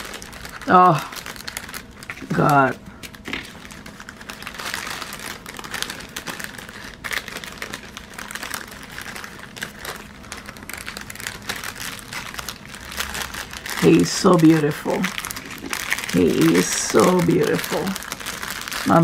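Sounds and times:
plastic bags crinkling: 0.0s - 19.0s.

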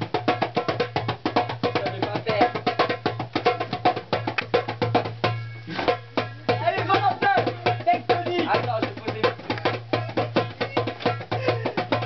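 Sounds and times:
hand drum beats: 0.0s - 12.0s.

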